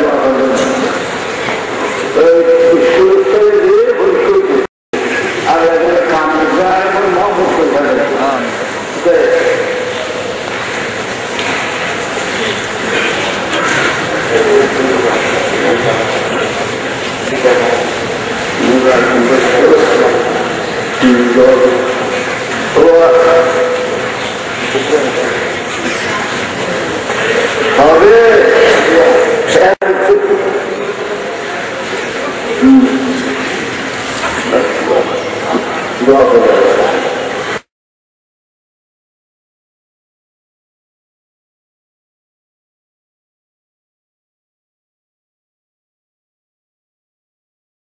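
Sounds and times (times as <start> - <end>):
man chanting a sermon: 2.2 - 4.6, 18.6 - 20.4, 21.0 - 24.0, 27.8 - 31.0.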